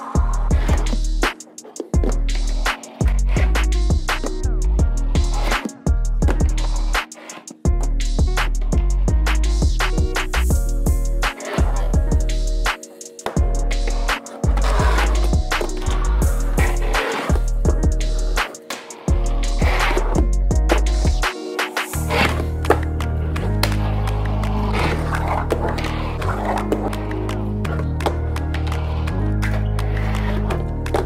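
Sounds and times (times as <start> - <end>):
music with heavy bass line: 0.0 - 1.3, 2.0 - 7.0, 7.7 - 12.8, 13.4 - 31.0.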